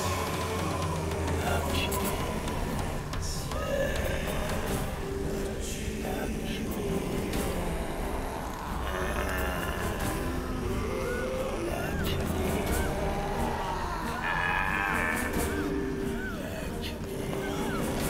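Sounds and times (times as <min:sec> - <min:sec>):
dark low droning score: 0:00.0 - 0:18.0.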